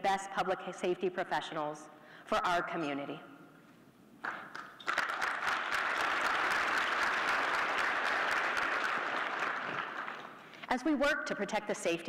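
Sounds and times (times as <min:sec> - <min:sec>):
audience applauding: 0:04.2 - 0:10.5.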